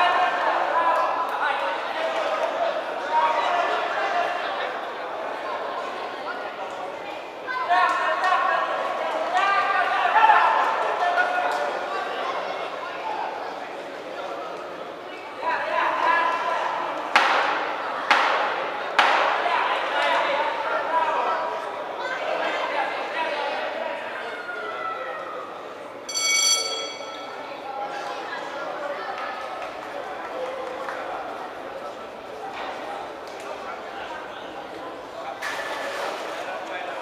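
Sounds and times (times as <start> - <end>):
voices shouting in echoing hall: 0.0 - 13.8, 15.1 - 35.1
short bell ringing: 26.1 - 27.7.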